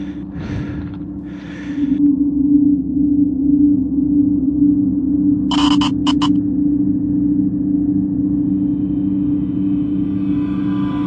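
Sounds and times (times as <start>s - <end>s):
low atmospheric drone: 0.0s - 11.0s.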